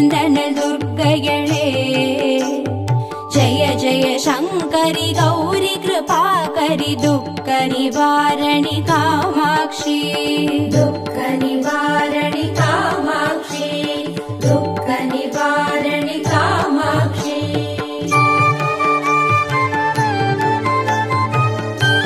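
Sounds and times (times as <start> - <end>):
devotional song with ornamented melody: 0.0 - 22.0.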